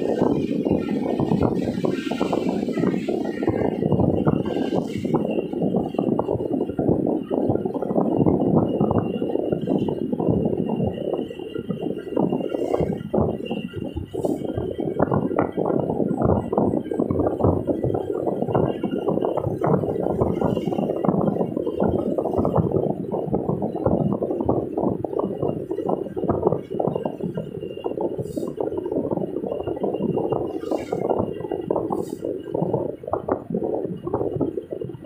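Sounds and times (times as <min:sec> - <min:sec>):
car road rumble: 0:00.0 - 0:35.0.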